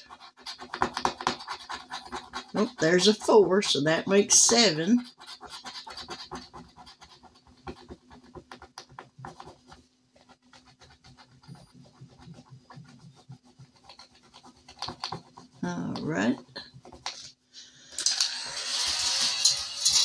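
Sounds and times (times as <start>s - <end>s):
metal tool scratching paper: 0.0s - 17.2s.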